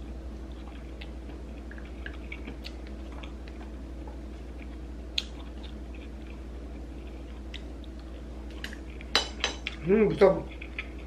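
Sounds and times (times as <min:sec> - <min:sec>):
chopsticks clinking on ceramic plate: 0:09.1 - 0:09.7.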